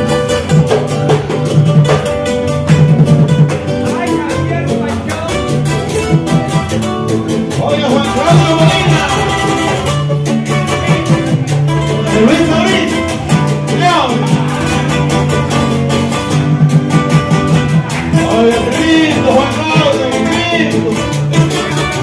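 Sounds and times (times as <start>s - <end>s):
acoustic guitars picking melody: 0.0s - 22.0s
low bass line: 0.0s - 22.0s
rhythmic beat: 0.0s - 22.0s.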